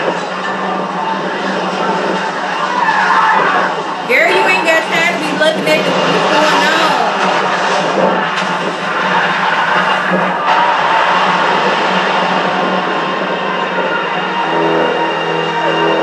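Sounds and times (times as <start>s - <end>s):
music: 0.0s - 16.0s
voices: 2.8s - 7.5s.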